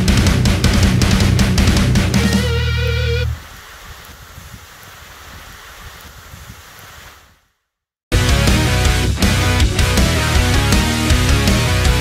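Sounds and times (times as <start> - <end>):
steady hiss: 2.1 - 7.6
vibrato guitar note: 2.2 - 3.4.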